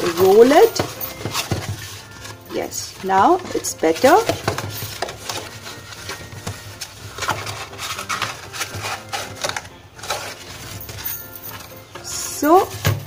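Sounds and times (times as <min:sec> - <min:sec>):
cardboard crinkling and rubbing: 0:00.0 - 0:13.0.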